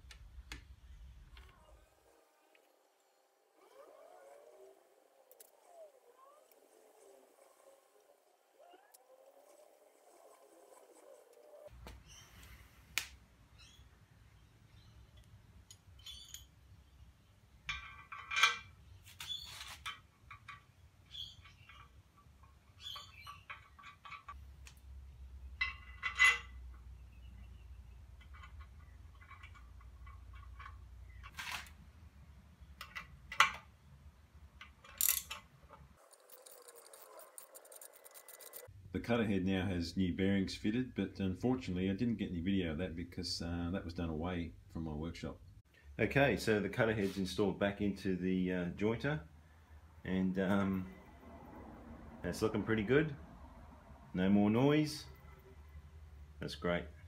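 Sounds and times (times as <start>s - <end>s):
short high squeaks: 19.1s - 19.8s.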